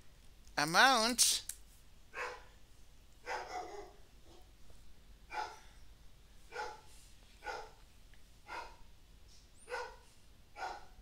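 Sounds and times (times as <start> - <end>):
dog barking: 2.2 - 2.5, 3.2 - 4.5, 5.3 - 5.7, 6.5 - 7.8, 8.5 - 8.8, 9.7 - 10.0, 10.6 - 11.0.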